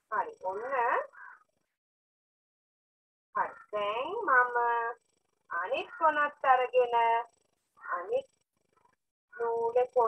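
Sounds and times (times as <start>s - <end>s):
woman speaking: 0.0s - 1.4s, 3.4s - 8.2s, 9.4s - 10.0s.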